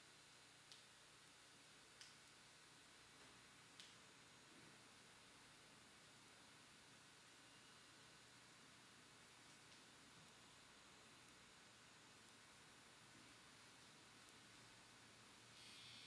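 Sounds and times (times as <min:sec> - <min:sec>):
high electronic sine tone: 0:00.0 - 0:16.0.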